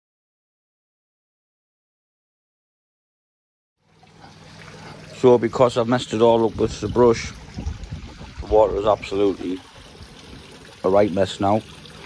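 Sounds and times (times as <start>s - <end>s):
water trickling: 3.8s - 12.0s
low steady hum: 3.9s - 12.0s.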